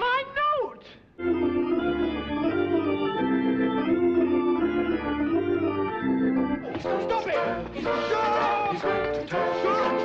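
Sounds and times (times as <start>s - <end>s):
organ playing slow chords: 1.2s - 6.7s
busier music: 1.2s - 10.0s.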